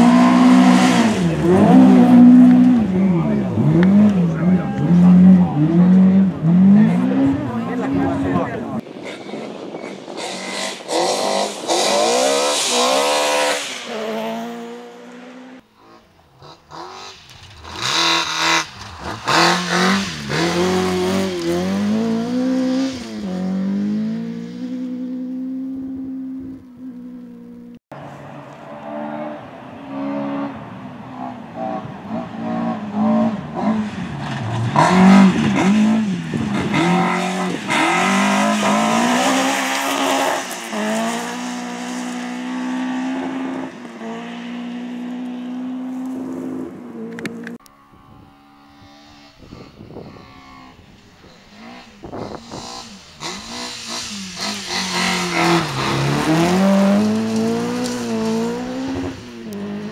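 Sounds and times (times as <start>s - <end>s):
rally car engine revving: 0.0s - 59.9s.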